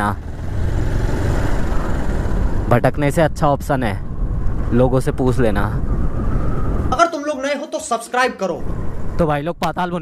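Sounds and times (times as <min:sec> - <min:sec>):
wind rushing on microphone: 0:00.2 - 0:07.1, 0:08.5 - 0:10.0.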